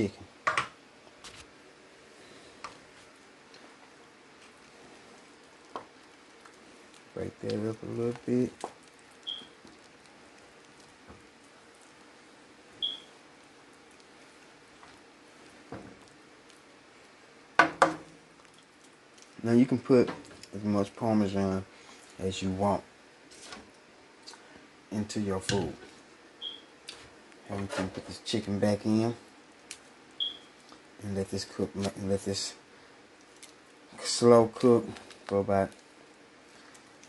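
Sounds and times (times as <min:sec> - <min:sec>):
sauce simmering in a skillet: 0:02.0 - 0:24.9.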